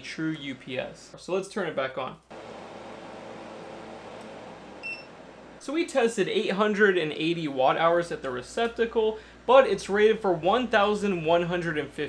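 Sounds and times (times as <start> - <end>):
cooling fan whirring: 2.3 - 12.0
short high beep: 4.8 - 5.1.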